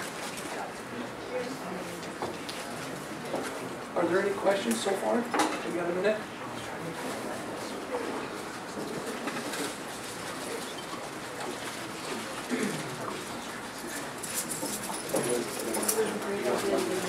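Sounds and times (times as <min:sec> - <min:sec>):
room noise: 0:00.0 - 0:17.0.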